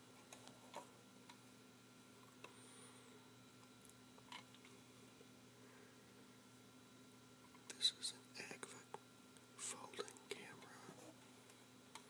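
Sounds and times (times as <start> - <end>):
person whispering: 7.7 - 9.0, 9.6 - 11.2.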